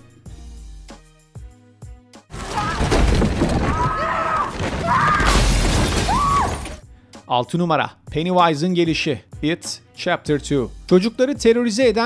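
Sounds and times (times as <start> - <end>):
window glass shattering: 2.3 - 6.8.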